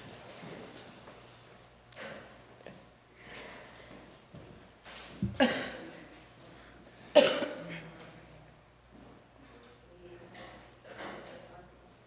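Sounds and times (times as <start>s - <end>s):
person coughing: 5.3s - 6.0s, 7.1s - 7.8s.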